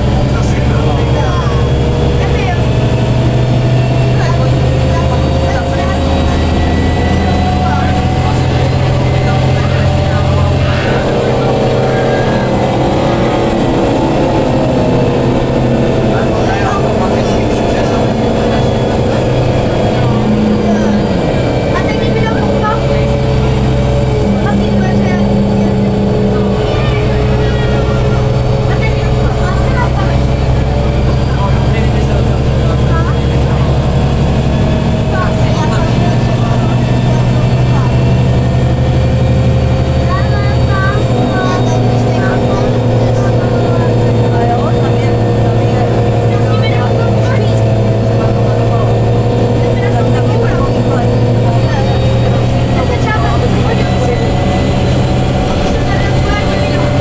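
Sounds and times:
bus engine and drivetrain drone: 0:00.0 - 0:57.0.

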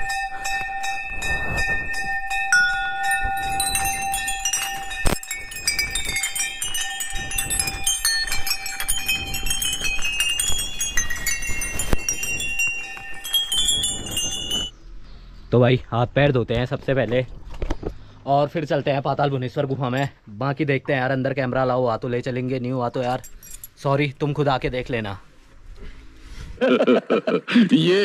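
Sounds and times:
sharp bell clangs: 0:00.0 - 0:14.7
small metal bells ringing: 0:00.0 - 0:14.8, 0:23.0 - 0:23.8.

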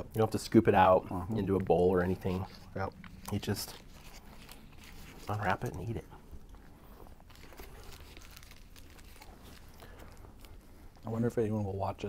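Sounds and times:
wrapper crinkling: 0:01.4 - 0:11.2.

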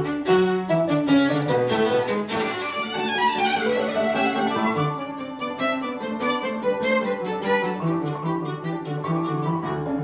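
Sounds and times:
piano accompaniment: 0:00.0 - 0:10.0
violin playing: 0:00.0 - 0:10.0.

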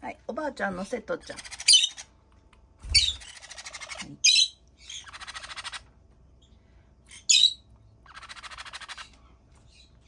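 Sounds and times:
parrot chicks squawking: 0:01.1 - 0:02.2, 0:02.8 - 0:06.0, 0:07.0 - 0:10.0.

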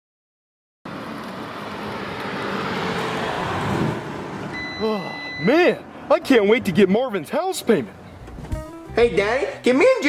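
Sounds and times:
sports car engine and road noise: 0:00.9 - 0:09.6.

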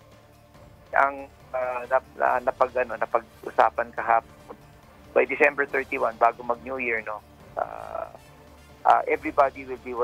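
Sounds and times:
man talking over phone line: 0:01.0 - 0:04.2, 0:05.2 - 0:08.2, 0:08.9 - 0:10.0.

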